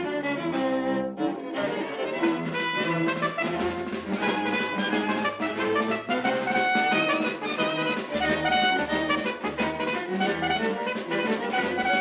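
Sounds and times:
orchestral cartoon music with brass: 0:01.8 - 0:12.0.

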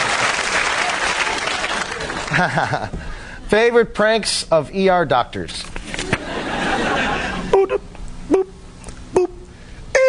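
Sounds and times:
audience applauding: 0:00.0 - 0:02.8.

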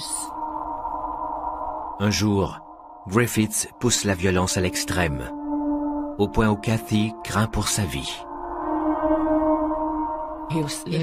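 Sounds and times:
sustained drone music: 0:00.0 - 0:11.0.

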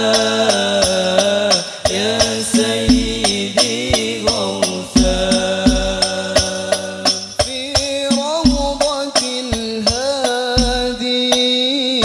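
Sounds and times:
frame drums beating: 0:00.0 - 0:11.6
men singing in unison: 0:00.0 - 0:12.0.

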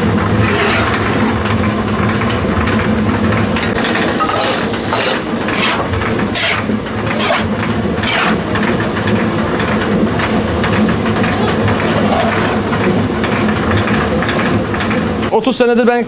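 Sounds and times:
metal scoop scraping cornmeal: 0:00.4 - 0:01.1, 0:04.1 - 0:08.4
millstones rumbling: 0:03.7 - 0:13.8.

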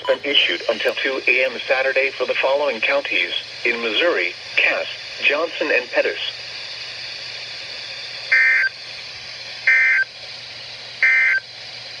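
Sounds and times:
radio hiss: 0:00.0 - 0:10.1
emergency alert data tones: 0:08.3 - 0:08.7, 0:09.7 - 0:10.1, 0:11.0 - 0:11.4.

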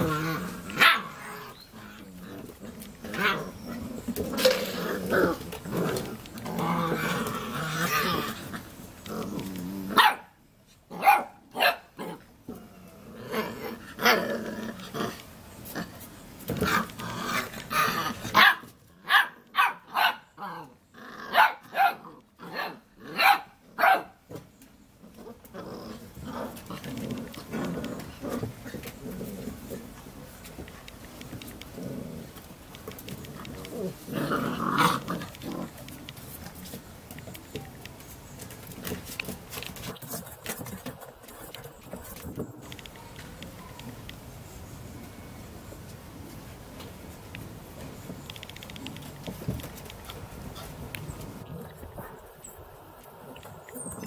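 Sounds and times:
puppies barking: 0:00.0 - 0:01.8, 0:09.9 - 0:12.2, 0:17.8 - 0:20.6, 0:21.2 - 0:24.2
puppies scuffling and grumbling: 0:00.0 - 0:19.9, 0:20.6 - 0:54.0.

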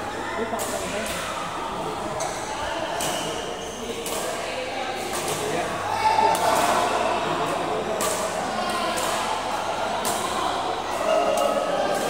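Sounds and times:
busy indoor hall din: 0:00.0 - 0:12.0
shuttlecocks struck by rackets: 0:08.0 - 0:09.2.

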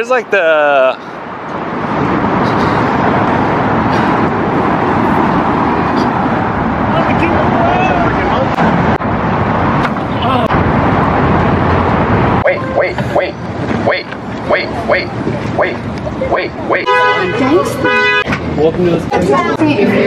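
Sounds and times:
traffic rumble and hiss: 0:00.0 - 0:20.0.

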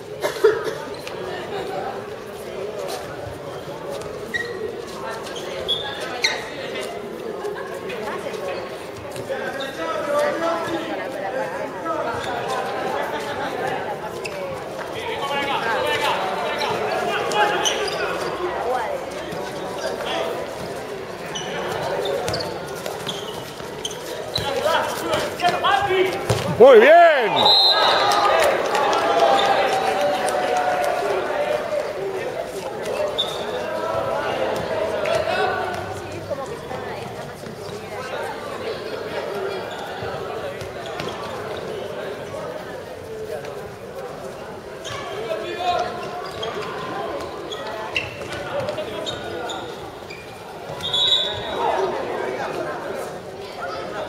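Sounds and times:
voices of players and spectators: 0:00.0 - 0:54.0
people calling out: 0:26.6 - 0:31.5.

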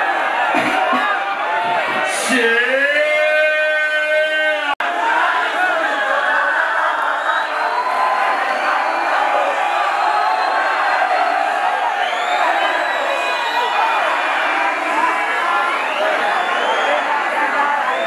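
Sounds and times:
crowd cheering and shouting: 0:00.0 - 0:18.0.

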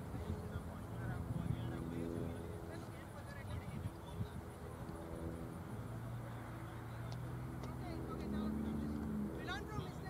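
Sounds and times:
steady engine drone: 0:00.0 - 0:10.0.

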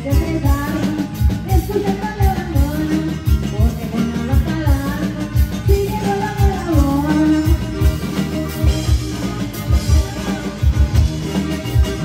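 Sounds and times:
drum kit: 0:00.0 - 0:12.0
electric bass: 0:00.0 - 0:12.0.

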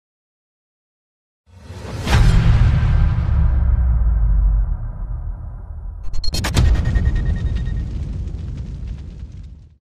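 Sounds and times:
low rumbling cinematic boom: 0:02.0 - 0:09.8.

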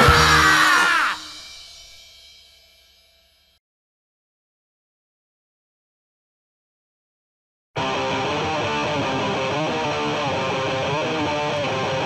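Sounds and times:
electric guitar strumming chords: 0:00.0 - 0:00.9, 0:07.8 - 0:12.0.

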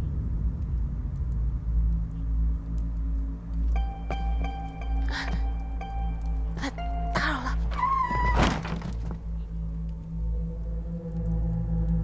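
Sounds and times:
background music: 0:02.7 - 0:12.0.

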